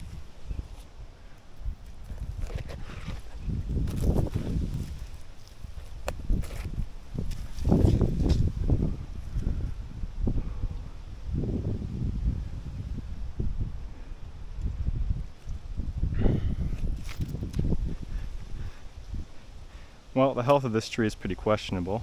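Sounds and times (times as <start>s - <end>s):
rubbing and scraping against bark: 0.0s - 8.6s.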